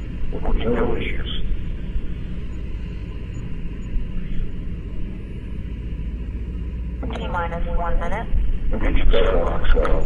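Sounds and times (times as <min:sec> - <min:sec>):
noisy low radio rumble: 0:00.0 - 0:10.0.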